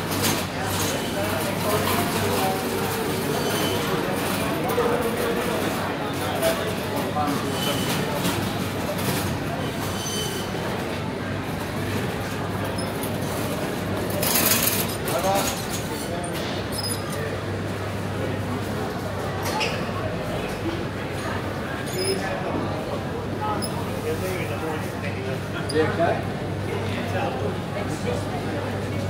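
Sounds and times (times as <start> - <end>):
chatter of shoppers: 0.0 - 29.0.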